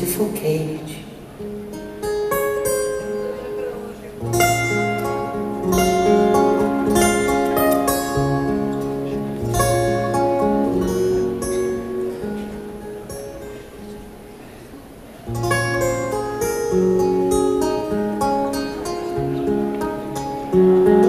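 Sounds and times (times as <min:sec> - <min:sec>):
fingerpicked acoustic guitar: 0:00.0 - 0:21.0.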